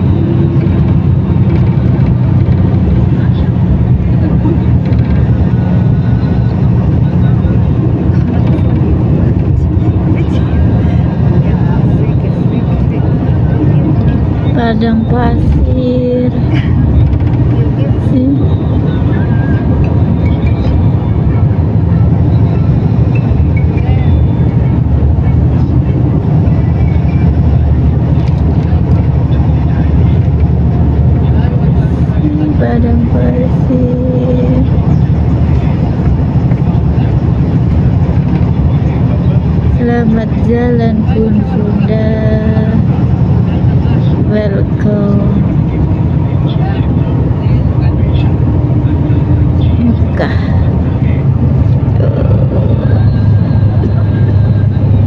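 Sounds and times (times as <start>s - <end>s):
vehicle engine and tyre rumble: 0.0s - 55.0s.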